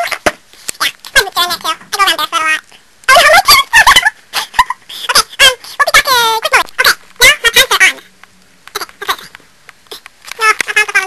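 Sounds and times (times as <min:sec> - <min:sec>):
person making warbling vocal noises: 0:08.7 - 0:11.0.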